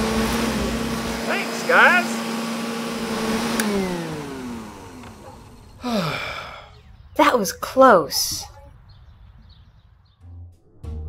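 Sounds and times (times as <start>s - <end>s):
vacuum cleaner motor whining: 0.0s - 6.7s
vacuum cleaner switch click: 3.4s - 5.6s.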